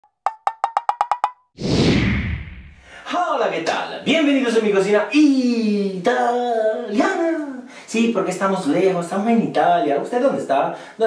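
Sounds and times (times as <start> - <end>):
whoosh with deep rumble: 1.6 - 2.9.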